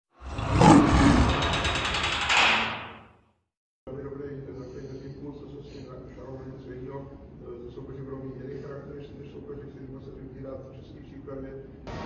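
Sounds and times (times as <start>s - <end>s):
lion roaring: 0.2s - 2.1s.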